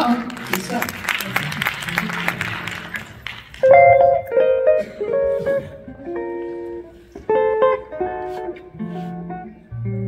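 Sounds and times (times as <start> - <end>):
audience applause: 0.0 - 4.2
jazz guitar ringing notes: 3.6 - 10.0.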